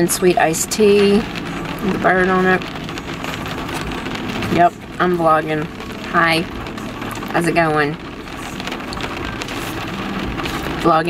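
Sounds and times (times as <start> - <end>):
rain on car roof and glass: 0.0 - 11.0.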